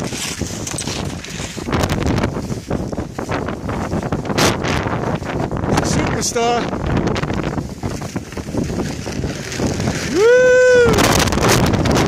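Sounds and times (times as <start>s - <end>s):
skis scraping on snow: 0.0s - 10.9s
wind on microphone: 0.0s - 12.0s.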